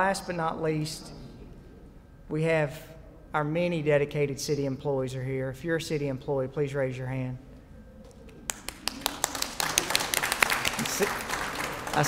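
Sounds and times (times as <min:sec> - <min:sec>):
crowd applause: 0:08.5 - 0:12.0.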